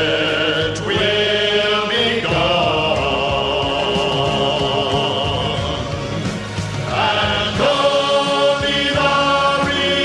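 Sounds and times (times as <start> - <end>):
male vocal group singing in harmony: 0.0 - 10.0.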